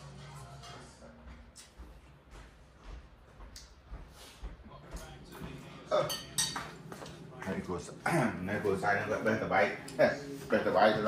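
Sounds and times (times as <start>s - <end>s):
spoon clinking against bowl: 6.1s - 6.7s.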